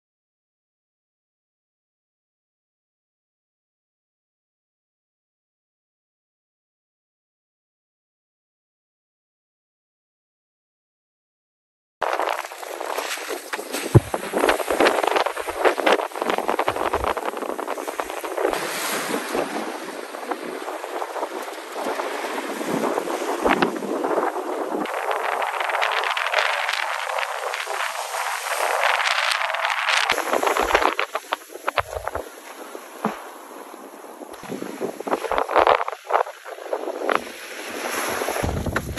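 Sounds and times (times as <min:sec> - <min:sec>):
small waves washing on beach: 0:12.0 - 0:38.9
wind buffeting microphone: 0:12.0 - 0:38.9.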